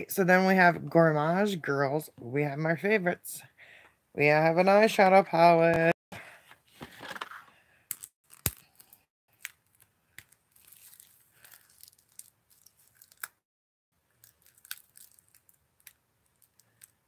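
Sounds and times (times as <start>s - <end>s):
light rustling of packaging: 8.3s - 13.4s, 14.1s - 17.0s.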